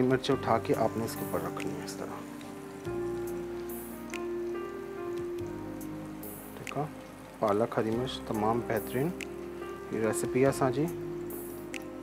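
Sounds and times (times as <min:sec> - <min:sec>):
background music with held tones: 0:00.0 - 0:12.0
chillies crackling in hot oil: 0:00.0 - 0:12.0.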